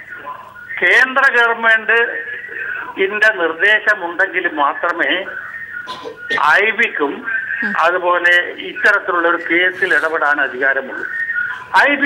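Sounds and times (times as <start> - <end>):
man talking over phone line: 0.0 - 12.0.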